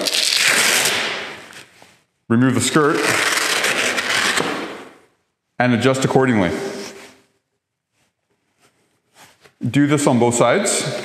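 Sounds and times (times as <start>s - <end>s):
hook-and-loop fastening ripping: 0.0s - 2.0s, 2.8s - 5.0s.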